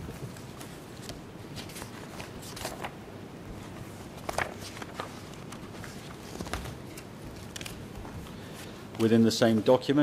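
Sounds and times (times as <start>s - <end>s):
low room hum: 0.0s - 10.0s
paper pages rustling: 0.1s - 9.1s
crisp paper crackles: 0.4s - 3.0s, 4.2s - 6.8s.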